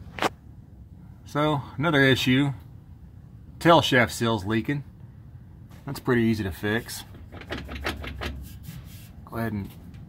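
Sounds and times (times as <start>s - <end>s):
small handling clicks and knocks: 7.0s - 8.6s.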